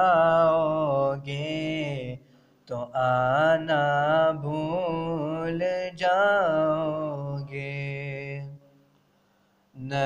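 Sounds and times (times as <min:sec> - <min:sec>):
man singing devotional song: 0:00.0 - 0:08.8, 0:09.7 - 0:10.0.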